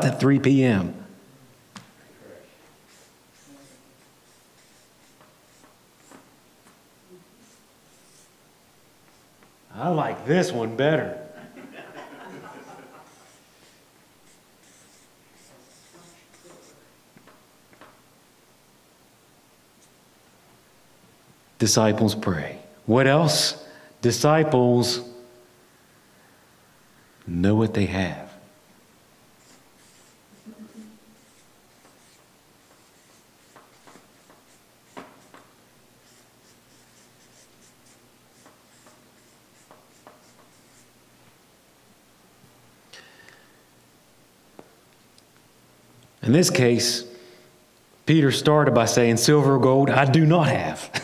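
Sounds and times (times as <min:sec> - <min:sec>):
marker pen scratching on paper: 0:02.8 - 0:06.3, 0:07.4 - 0:08.4, 0:13.0 - 0:16.9, 0:29.4 - 0:40.9.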